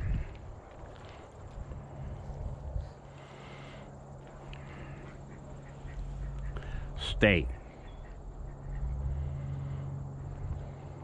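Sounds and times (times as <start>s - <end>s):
low steady hum: 0.0s - 11.0s
ducks quacking faintly: 2.8s - 11.0s.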